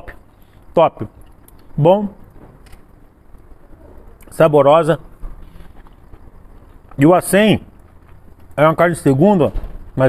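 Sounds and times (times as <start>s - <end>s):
person speaking: 0.0s - 2.2s
low background noise: 0.0s - 10.0s.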